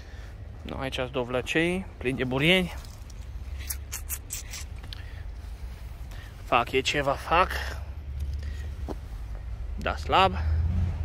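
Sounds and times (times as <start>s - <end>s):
low steady rumble: 0.0s - 11.0s
rustling against phone: 2.3s - 7.2s, 8.3s - 9.6s.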